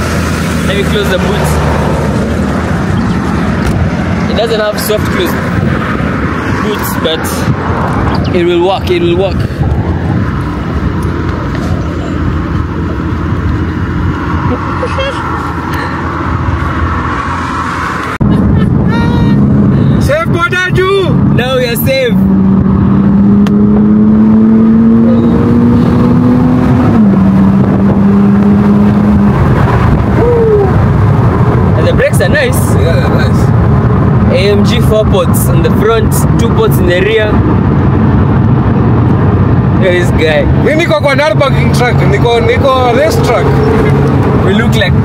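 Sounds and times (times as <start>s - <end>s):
wind rushing past: 0.0s - 20.1s
car engine accelerating: 0.0s - 45.0s
voices: 18.4s - 22.3s.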